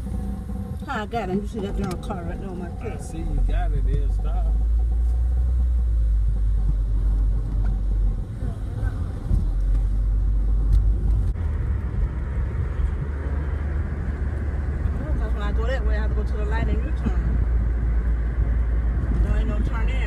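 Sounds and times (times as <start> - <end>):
car driving rumble: 0.0 - 20.0.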